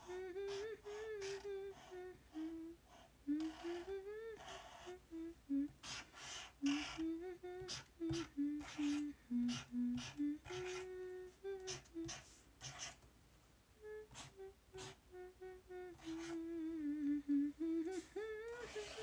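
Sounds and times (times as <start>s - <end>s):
woman humming: 0.0s - 12.8s, 13.8s - 19.0s.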